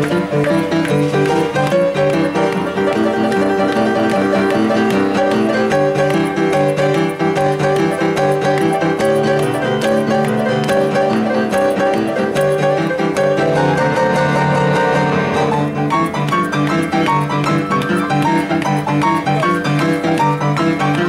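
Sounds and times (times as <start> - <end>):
upright piano playing: 0.0 - 21.0.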